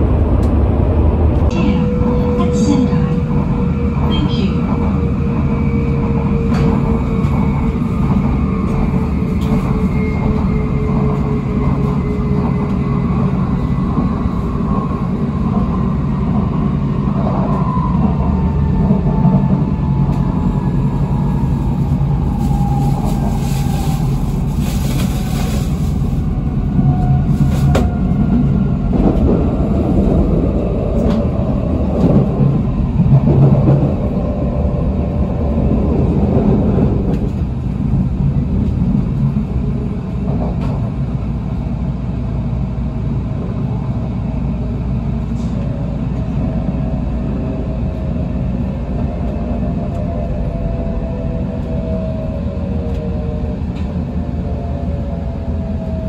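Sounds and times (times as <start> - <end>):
train wheels rumbling on track: 0.0 - 56.0.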